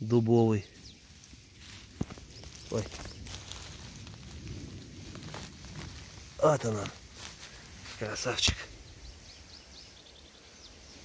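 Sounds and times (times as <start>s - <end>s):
rustling grass and forest litter: 0.0s - 11.0s
small crackles: 0.7s - 8.8s.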